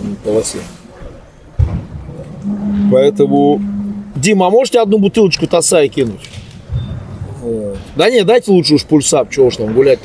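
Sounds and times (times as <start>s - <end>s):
man humming mmm: 2.4s - 4.3s.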